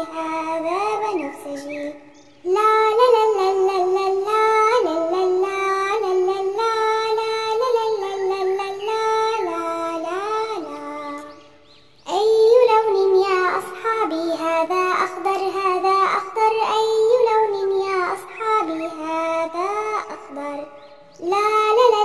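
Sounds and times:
child singing: 0.0 - 22.0.

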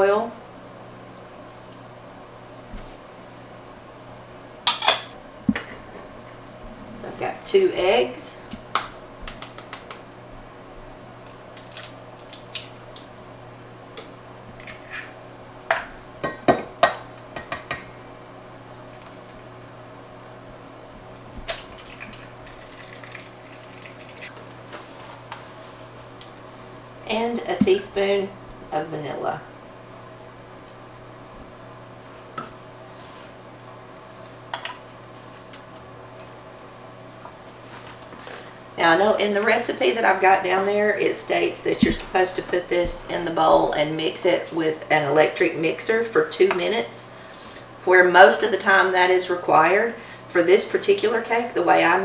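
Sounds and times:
steady faint hum: 0.0 - 52.0
eggs cracking on steel bowl: 8.5 - 10.1, 11.2 - 13.1, 21.1 - 24.4.

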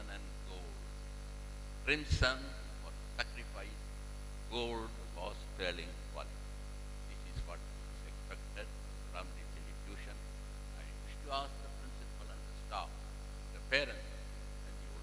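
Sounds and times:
electrical mains hum: 0.0 - 15.0.

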